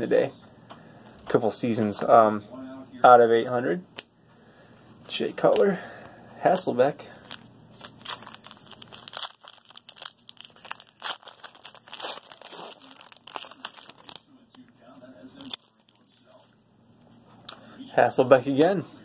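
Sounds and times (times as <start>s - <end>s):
card pack wrapper tearing: 7.2s - 14.7s, 15.4s - 16.5s.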